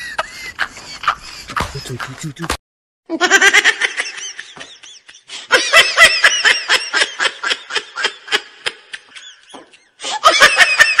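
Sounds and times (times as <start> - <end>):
person laughing: 0.0 - 11.0.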